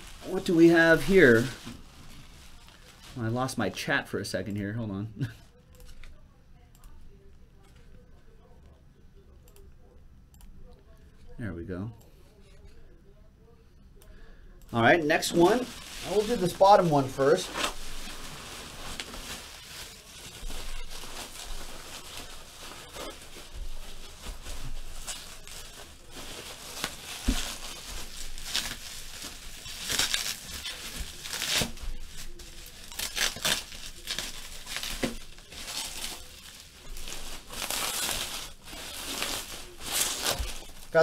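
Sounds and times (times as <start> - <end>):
bubble wrap crinkling: 0.0 - 4.0, 14.8 - 41.0.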